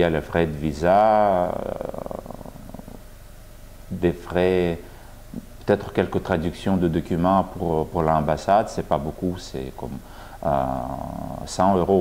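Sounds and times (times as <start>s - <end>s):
man speaking: 0.0s - 3.0s, 3.9s - 12.0s
man's hesitation sound: 1.2s - 3.0s.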